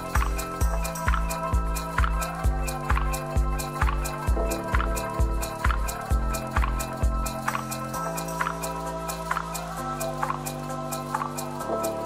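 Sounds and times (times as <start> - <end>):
hi-hat ticking: 0.0 - 12.0
sustained synth chords: 0.0 - 12.0.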